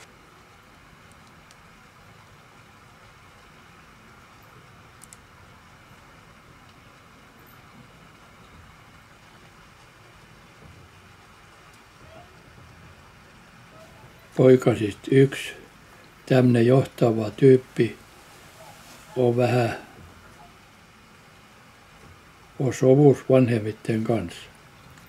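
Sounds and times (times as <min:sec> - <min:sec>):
faint clicks: 0:01.0 - 0:01.6, 0:04.5 - 0:05.3.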